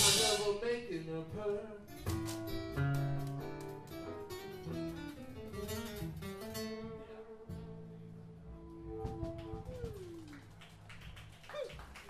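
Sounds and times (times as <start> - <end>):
short falling pitched cry: 9.5 - 10.5.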